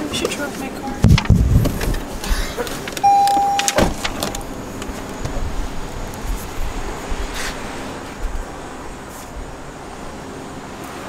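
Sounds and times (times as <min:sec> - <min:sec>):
outdoor traffic noise: 0:00.0 - 0:11.0
car electronic beep: 0:03.0 - 0:04.5
car door thump: 0:03.2 - 0:04.4.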